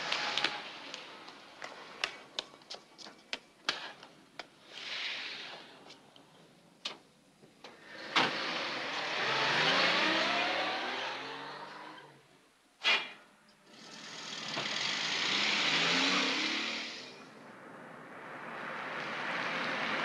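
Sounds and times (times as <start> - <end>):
footsteps on pavement: 0.4 - 4.5
car engine accelerating: 8.3 - 12.2, 13.8 - 17.3.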